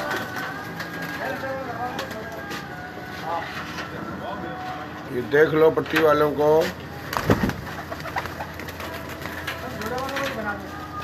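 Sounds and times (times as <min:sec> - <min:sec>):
pigeons shuffling: 0:00.0 - 0:03.9, 0:05.9 - 0:11.0
pigeons cooing: 0:07.0 - 0:11.0
wings flapping: 0:07.0 - 0:11.0.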